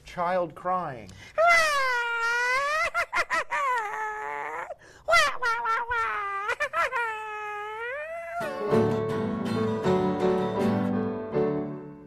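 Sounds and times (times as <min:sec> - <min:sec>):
sobbing gasps: 0:01.1 - 0:01.9, 0:02.8 - 0:05.2
man wailing in falsetto: 0:01.4 - 0:08.9.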